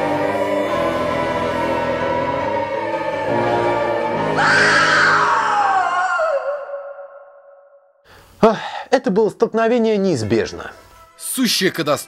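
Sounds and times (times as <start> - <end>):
dramatic music: 0.0 - 7.2
high drawn-out cry: 4.3 - 7.2.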